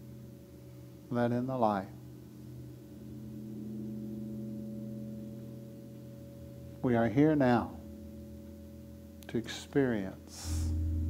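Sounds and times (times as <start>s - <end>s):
sustained low ringing tones: 0.0s - 11.0s.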